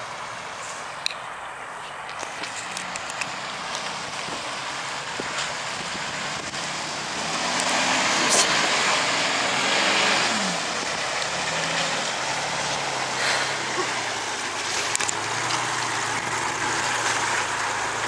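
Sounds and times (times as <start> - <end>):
broad rush of noise: 0.0 - 18.0
off-road vehicle engine revving: 2.8 - 18.0.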